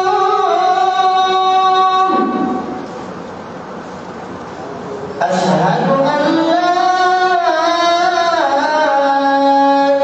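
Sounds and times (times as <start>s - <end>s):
person chanting a long note: 0.0s - 2.8s
room noise: 0.0s - 10.0s.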